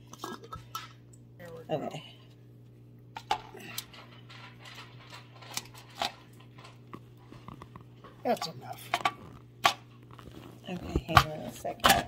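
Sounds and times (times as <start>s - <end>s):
tobacco rustling: 8.8s - 11.6s.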